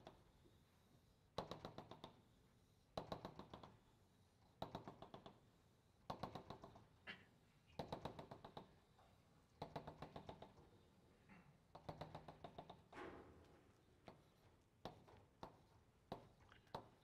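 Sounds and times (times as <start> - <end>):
chalk tapping on a blackboard: 14.0 - 16.9.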